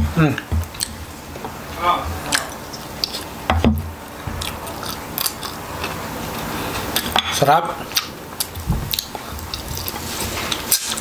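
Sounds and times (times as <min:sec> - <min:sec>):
person chewing food: 0:00.0 - 0:07.2, 0:07.8 - 0:11.0.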